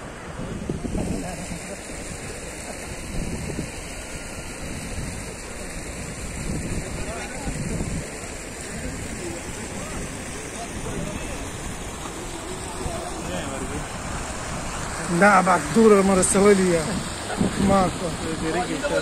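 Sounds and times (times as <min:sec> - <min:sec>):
wind on microphone: 0:00.0 - 0:15.1, 0:15.7 - 0:19.0
people's voices: 0:00.2 - 0:19.0.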